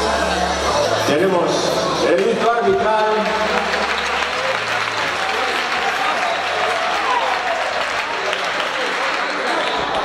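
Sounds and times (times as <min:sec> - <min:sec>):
audience applauding: 0:02.9 - 0:10.0.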